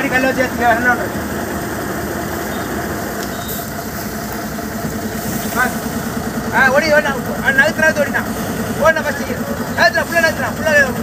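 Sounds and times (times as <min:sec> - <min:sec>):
truck diesel engine running: 0:00.0 - 0:11.0.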